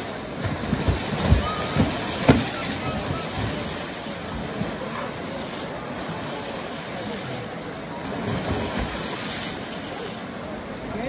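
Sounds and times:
river water rushing at a weir: 0.0s - 11.0s.

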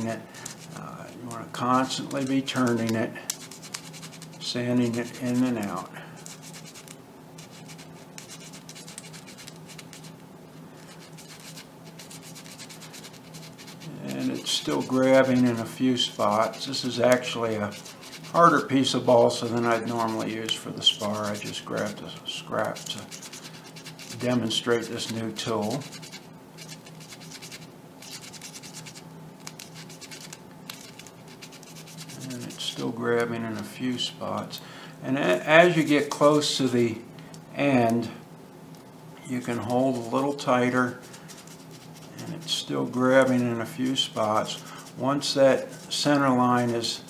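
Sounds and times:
wood being hand-sanded: 10.9s - 18.6s, 19.6s - 29.0s, 29.8s - 32.8s, 39.5s - 47.0s.

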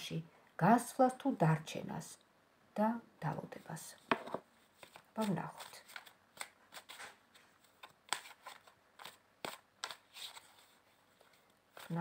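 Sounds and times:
cards rustling: 4.2s - 12.0s
cards snapping and slapping: 7.8s - 10.0s.

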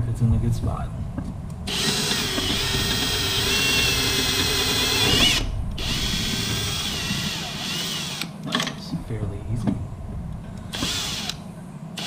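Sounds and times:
cordless drill whining: 1.7s - 8.3s, 10.7s - 11.4s.

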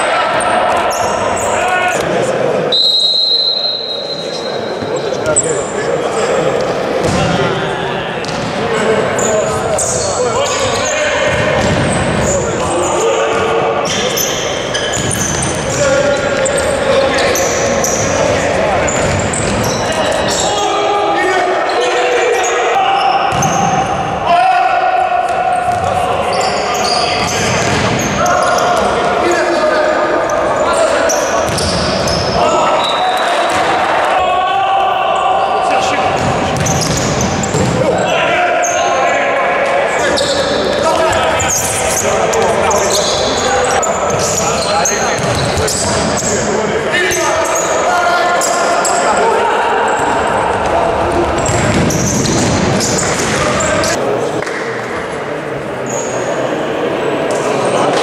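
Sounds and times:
people shouting: 32.1s - 36.1s.

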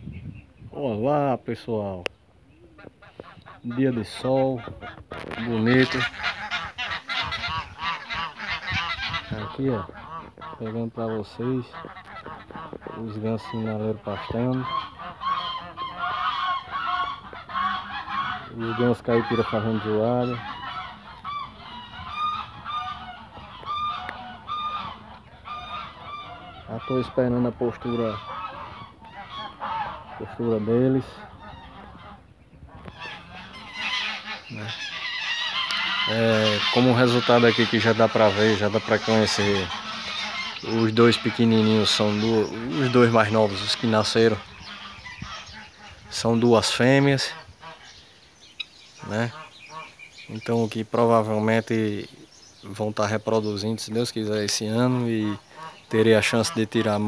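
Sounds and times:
geese honking: 2.6s - 57.0s.

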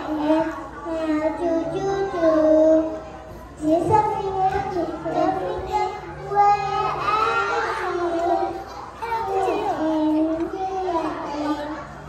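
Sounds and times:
child singing into a microphone: 0.0s - 11.9s.

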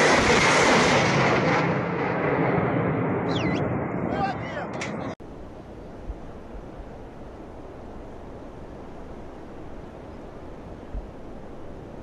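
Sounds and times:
rocket salvo roaring: 0.0s - 5.2s.

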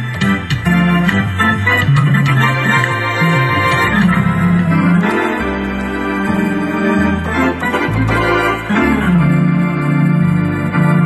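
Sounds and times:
organ playing sustained chords: 0.0s - 11.0s
stepping bass line: 0.0s - 11.0s.

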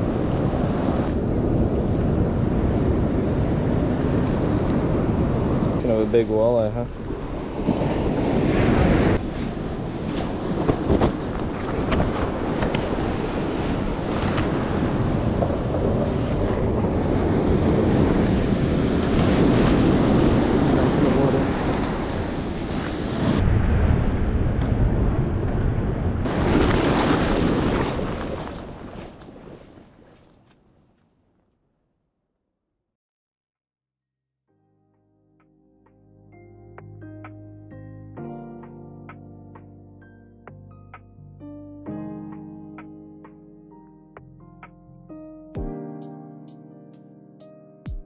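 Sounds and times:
wind buffeting microphone: 0.0s - 29.7s
surf washing onto beach: 0.0s - 30.4s.

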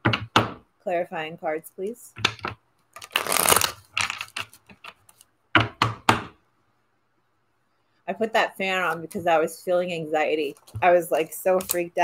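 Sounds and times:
cards shuffling: 3.0s - 5.3s, 10.5s - 11.9s.

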